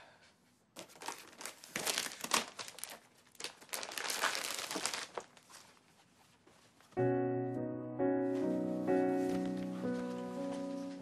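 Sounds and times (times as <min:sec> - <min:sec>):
plastic packaging crinkling: 0:00.8 - 0:05.9.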